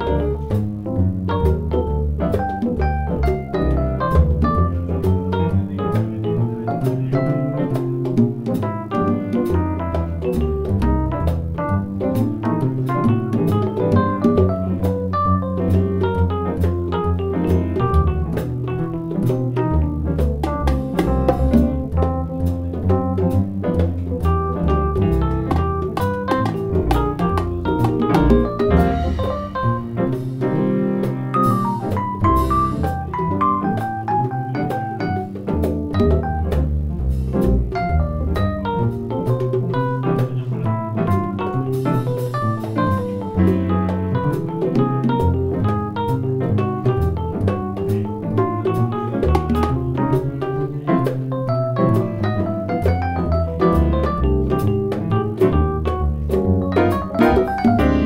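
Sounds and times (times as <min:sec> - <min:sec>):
congas played by hand: 0:00.0 - 0:58.0
jazz piano: 0:00.0 - 0:58.0
organ-toned keyboards: 0:00.0 - 0:58.0.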